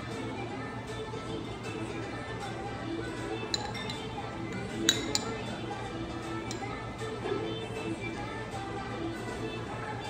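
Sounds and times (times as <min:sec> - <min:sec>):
background music: 0:00.0 - 0:10.0
ceramic spoon clinking on bowl: 0:03.5 - 0:05.5, 0:06.3 - 0:06.8.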